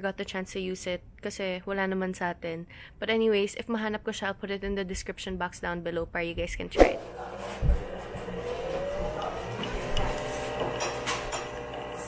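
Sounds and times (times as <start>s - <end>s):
coffee machine whirring: 7.0s - 12.0s.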